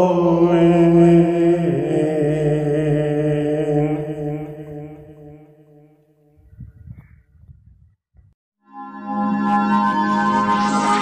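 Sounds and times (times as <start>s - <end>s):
man chanting recitation: 0.0s - 5.7s.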